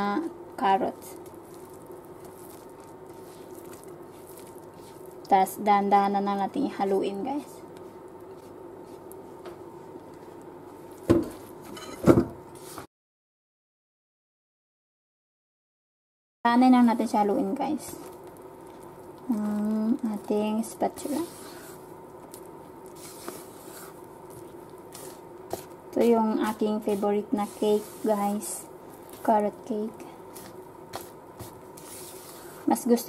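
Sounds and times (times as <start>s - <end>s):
low steady hum: 0.0s - 12.4s, 16.5s - 33.0s
spatula stirring batter: 0.5s - 11.7s, 17.0s - 33.0s
spatula scraping plastic bowl: 20.9s - 21.8s, 22.9s - 25.8s, 26.4s - 29.4s, 30.3s - 32.7s.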